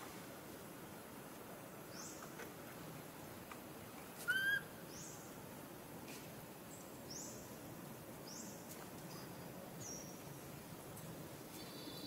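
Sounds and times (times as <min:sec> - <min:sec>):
low background hiss: 0:00.0 - 0:12.0
short pitched bird call: 0:04.3 - 0:04.6.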